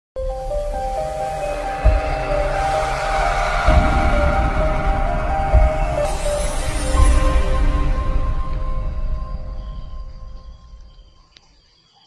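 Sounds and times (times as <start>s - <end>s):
whoosh: 0.4s - 11.0s
deep booms: 0.7s - 11.0s.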